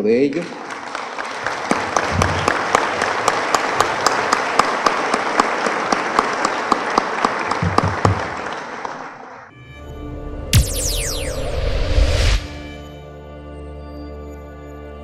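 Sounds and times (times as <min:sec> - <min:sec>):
audience applauding: 0:00.0 - 0:09.5
close sharp hand claps: 0:00.3 - 0:09.2.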